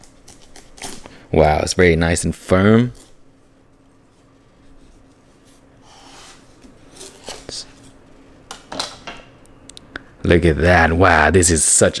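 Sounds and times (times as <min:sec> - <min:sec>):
knife cutting melon rind: 0:00.0 - 0:01.2.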